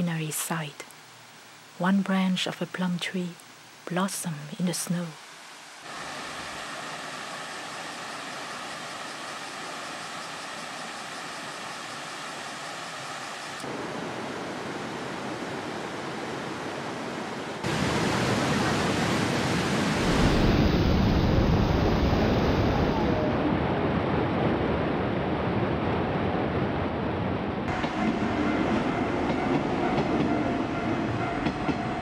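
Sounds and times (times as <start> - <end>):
waterfall rushing: 5.6 - 23.4.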